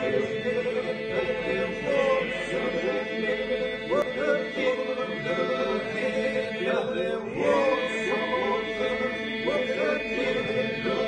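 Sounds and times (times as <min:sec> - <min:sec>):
men singing polyphonic folk song: 0:00.0 - 0:11.0.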